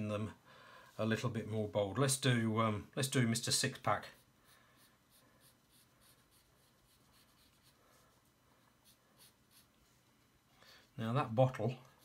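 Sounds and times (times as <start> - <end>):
pencil scratching on paper: 4.0 - 10.0.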